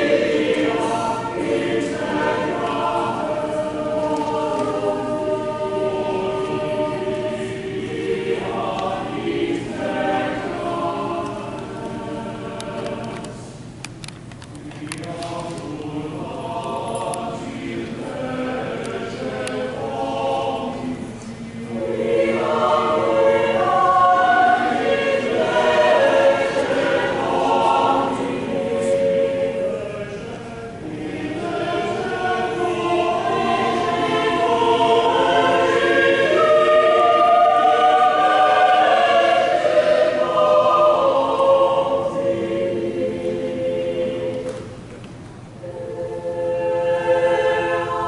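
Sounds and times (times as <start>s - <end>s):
choir and congregation singing hymn: 0.0s - 13.7s, 14.4s - 48.0s.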